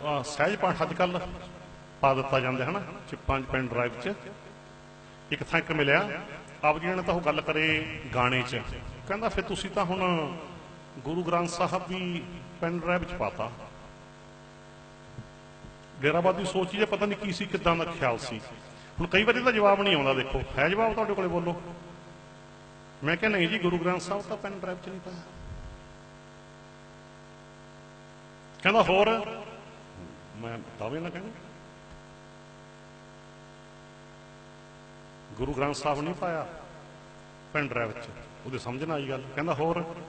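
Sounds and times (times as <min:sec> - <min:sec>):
electrical mains hum: 0:00.0 - 0:40.0.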